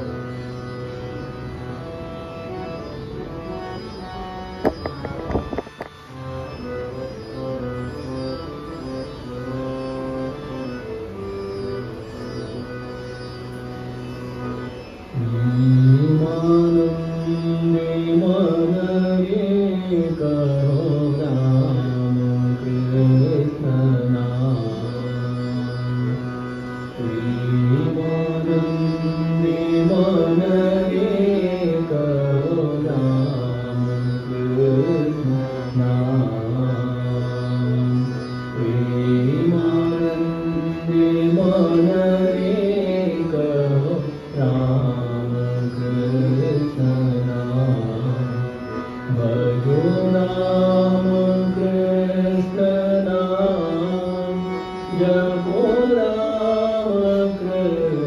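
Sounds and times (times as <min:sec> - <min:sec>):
harmonium drone and melody: 0:00.0 - 0:58.0
man singing devotional song: 0:15.2 - 0:26.3, 0:27.0 - 0:58.0.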